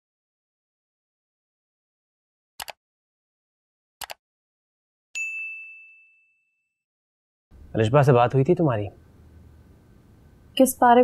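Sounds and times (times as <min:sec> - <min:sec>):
notification bell ding: 0:05.2 - 0:06.6.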